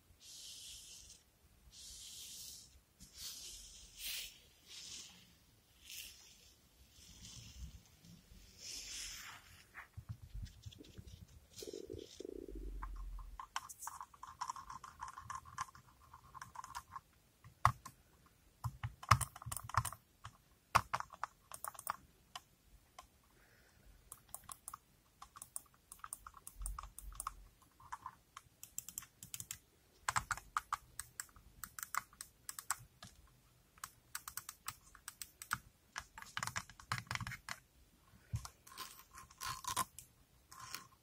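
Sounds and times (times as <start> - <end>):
fingernails tapping plastic mouse: 24.1 - 33.2.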